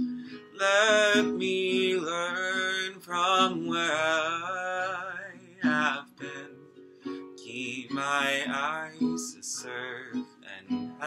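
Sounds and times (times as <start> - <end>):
acoustic guitar: 0.0 - 11.0
man singing: 0.5 - 6.7, 7.3 - 11.0.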